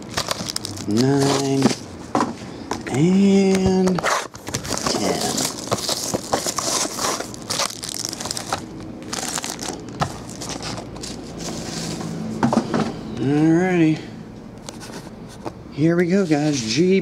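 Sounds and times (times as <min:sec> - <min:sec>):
plastic wrappers crinkling: 0:00.0 - 0:01.8, 0:03.3 - 0:12.0.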